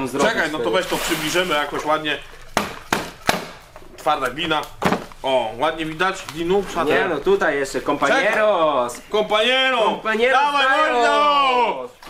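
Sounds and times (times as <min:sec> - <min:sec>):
cardboard boxes knocking on table: 0:04.8 - 0:05.1.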